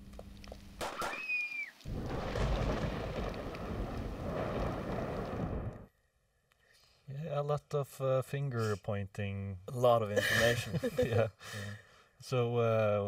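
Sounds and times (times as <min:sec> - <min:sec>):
short high cry falling in pitch: 0:01.0 - 0:01.8
rain hissing: 0:01.2 - 0:05.9
low thunder rumble: 0:01.9 - 0:05.9.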